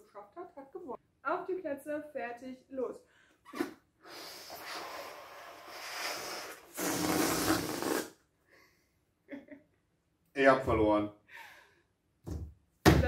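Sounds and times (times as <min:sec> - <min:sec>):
air rushing out of balloon: 0:04.0 - 0:08.2
breath blown into balloons: 0:04.0 - 0:08.3.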